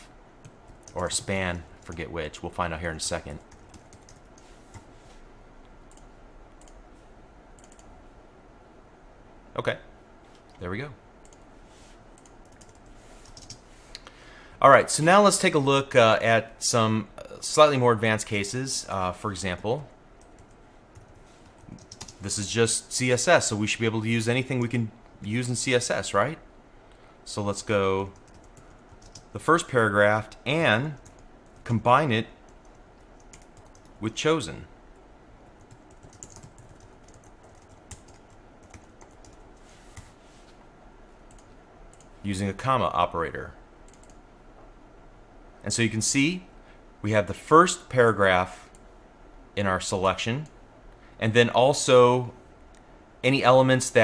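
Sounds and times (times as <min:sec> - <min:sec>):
typing on computer keyboard: 0:03.4 - 0:04.8, 0:07.6 - 0:07.9, 0:12.2 - 0:13.6, 0:20.2 - 0:22.2, 0:28.2 - 0:29.3, 0:32.6 - 0:34.0, 0:35.6 - 0:39.4, 0:43.9 - 0:44.2
keyboard and mouse clicks: 0:07.6 - 0:07.9.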